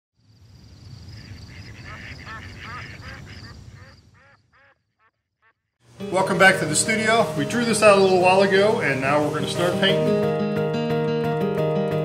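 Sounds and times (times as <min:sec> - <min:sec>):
waterfowl honking: 0:01.1 - 0:10.2.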